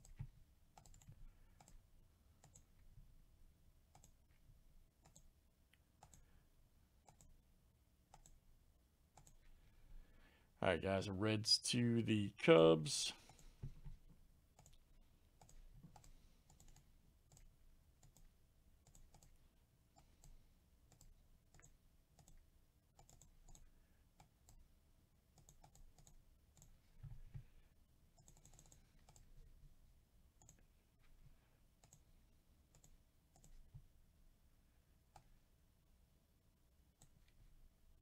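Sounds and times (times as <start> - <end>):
mouse and keyboard clicking: 28.2 - 29.3.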